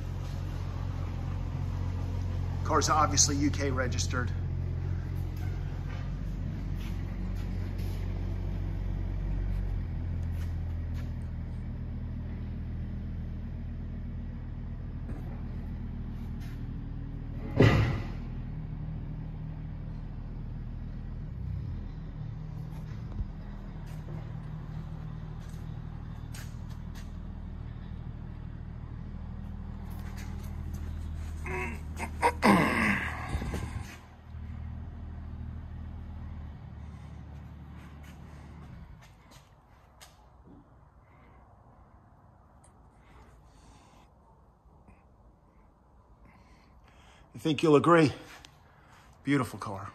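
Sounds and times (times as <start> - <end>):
low mechanical drone: 0.0 - 49.9.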